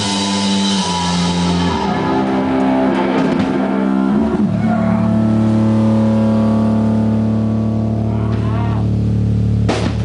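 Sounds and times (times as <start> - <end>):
distorted electric guitar chord: 0.0 - 9.8
bass guitar: 0.0 - 10.0.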